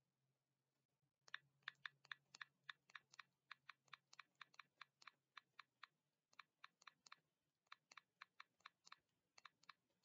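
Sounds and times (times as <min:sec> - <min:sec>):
computer mouse clicking: 0:01.2 - 0:10.0.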